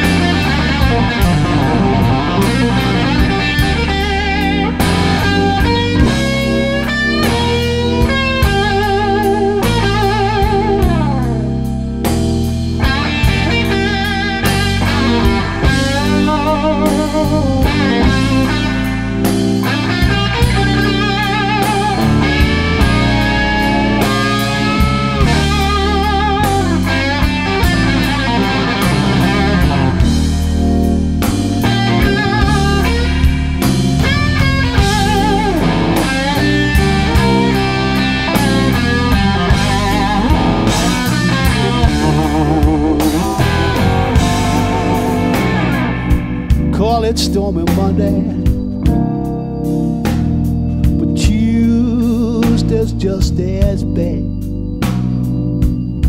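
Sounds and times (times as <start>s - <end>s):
electric guitar bent notes: 0.0s - 56.0s
slow blues band: 0.0s - 56.0s.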